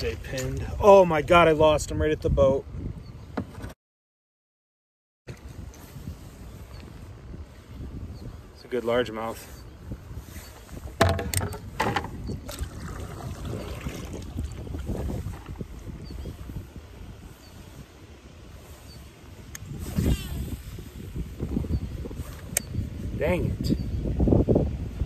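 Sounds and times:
wind rumbling on microphone: 0.0 - 3.8, 5.3 - 25.0
sharp clicks and knocks: 11.0 - 12.2.

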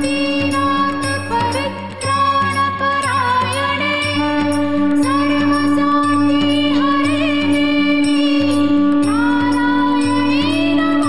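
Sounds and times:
loud steady drone: 0.0 - 2.6, 4.1 - 11.0
chanted melody with vibrato: 0.0 - 11.0.

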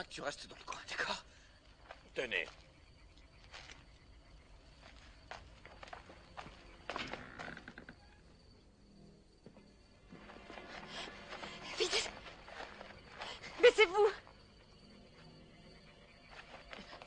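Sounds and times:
faint footsteps: 1.6 - 7.9, 9.2 - 17.0.

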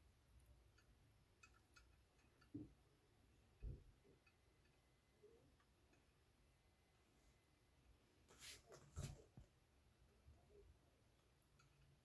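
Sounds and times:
soft ticks: 0.4 - 2.8, 3.6 - 6.2, 11.1 - 12.0.

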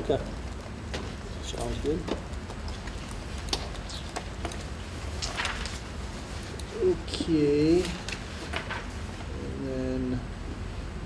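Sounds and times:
papers rustling: 0.0 - 9.3
low room hum: 0.0 - 11.0.

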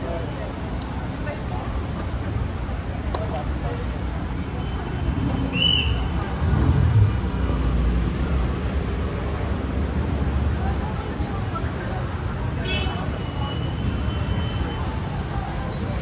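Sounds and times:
street noise: 0.0 - 16.0
vehicles driving past: 0.0 - 16.0.

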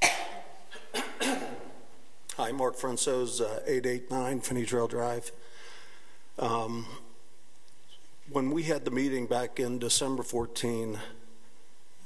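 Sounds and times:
man clearing his throat: 0.0 - 1.8.

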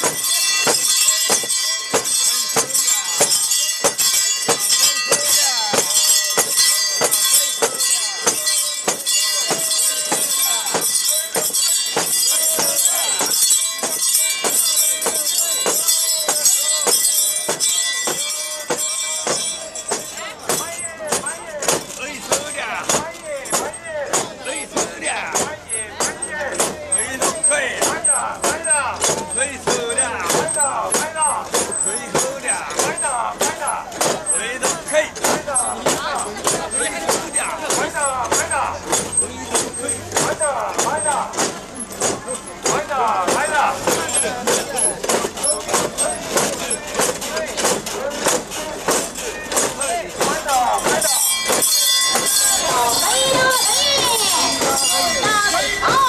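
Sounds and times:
crowd chanting: 0.0 - 56.0
metal handles clanking: 0.0 - 56.0
people shouting a chant: 45.7 - 56.0.

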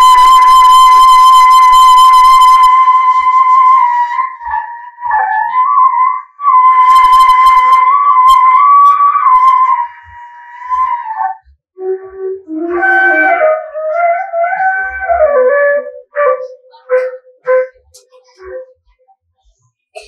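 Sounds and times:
high notes blown on a tube: 0.0 - 18.9.

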